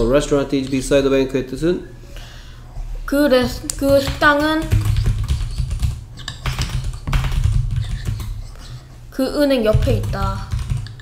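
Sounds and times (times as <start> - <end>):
typing on computer keyboard: 3.6 - 8.5, 9.7 - 11.0.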